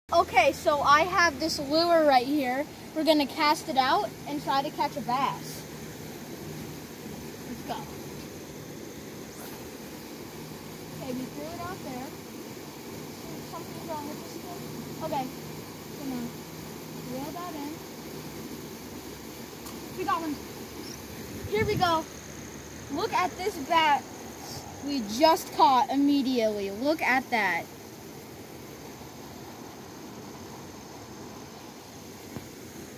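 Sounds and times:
steady background hiss: 0.1 - 32.9
stream water rushing through weir: 0.1 - 32.9.

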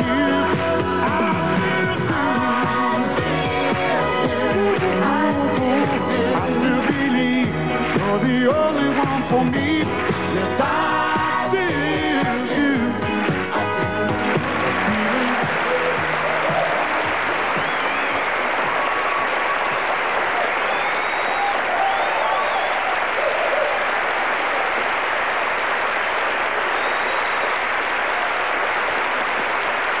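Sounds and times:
band playing: 0.0 - 19.2
studio audience applauding: 0.0 - 30.0
audience cheering: 13.7 - 30.0.

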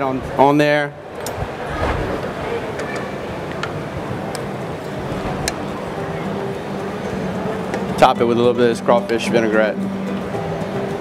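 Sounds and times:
busy hall din: 0.0 - 11.0
low hum: 3.2 - 8.3.

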